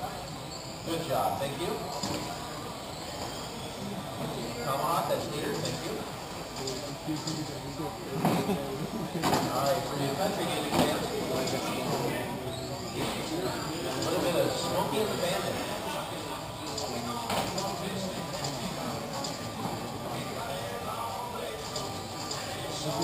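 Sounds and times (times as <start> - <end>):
background chatter: 0.0 - 23.0.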